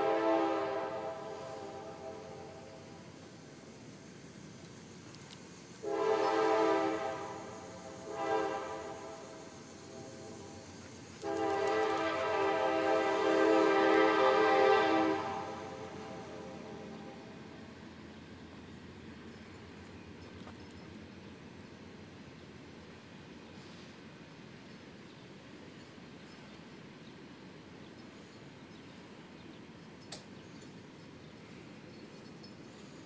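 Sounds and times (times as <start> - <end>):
train horn blasts: 0.0 - 2.8, 5.8 - 10.6, 11.2 - 17.4.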